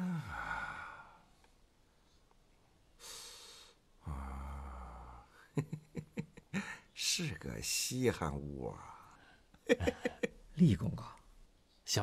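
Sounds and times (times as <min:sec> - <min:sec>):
man humming hmm and sighing: 0:00.0 - 0:01.0, 0:04.0 - 0:05.4.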